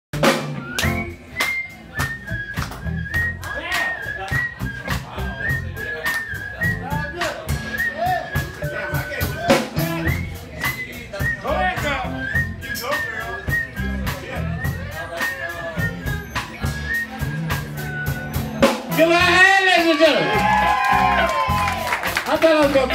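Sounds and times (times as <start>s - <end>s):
steady drum beat: 0.1s - 22.9s
live blues band: 0.2s - 22.9s
woman whistling: 0.6s - 9.0s, 9.8s - 18.6s.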